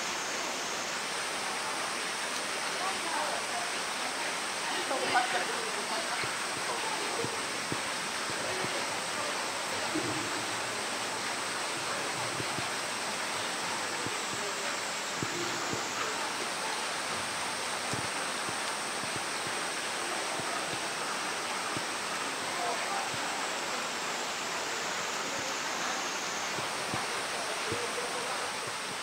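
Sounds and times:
heavy rain hissing: 0.0s - 29.0s.

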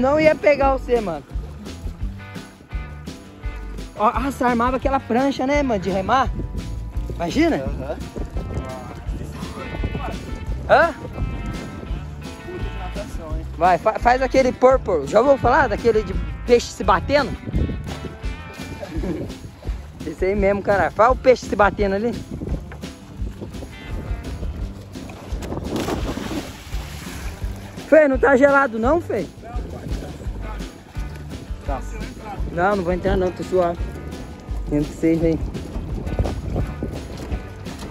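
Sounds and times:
background music: 0.0s - 37.9s
footsteps on wooden dock: 0.0s - 37.9s
wind buffeting microphone: 0.0s - 37.9s
splash into lake water: 22.1s - 37.9s.

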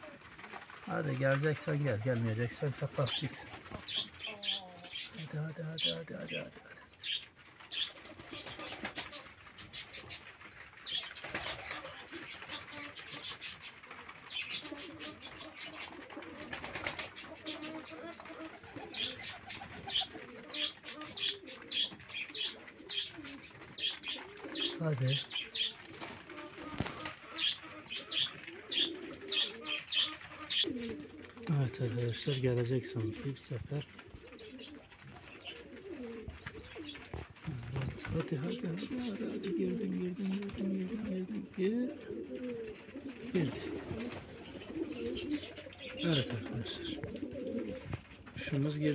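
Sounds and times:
pigeons cooing: 0.0s - 48.9s
wings flapping: 0.0s - 48.9s.

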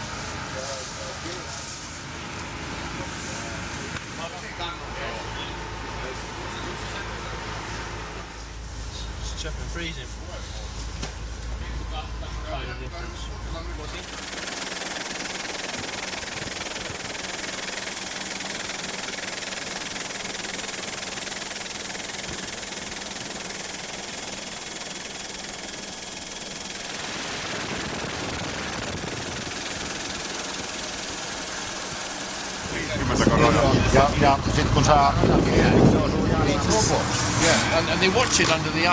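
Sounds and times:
helicopter running: 12.4s - 38.9s.

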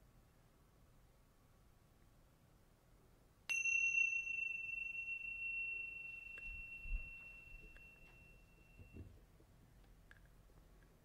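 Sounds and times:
hand-held chime ringing: 3.5s - 9.0s.

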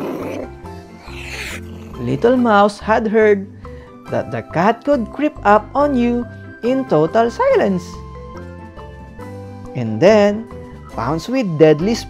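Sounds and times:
cat hissing: 0.0s - 2.2s
cat growling: 0.0s - 2.4s
soft background music: 0.0s - 12.0s.

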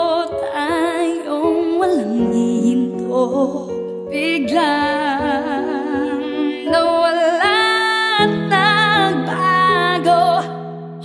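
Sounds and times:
person singing with vibrato: 0.0s - 11.0s.

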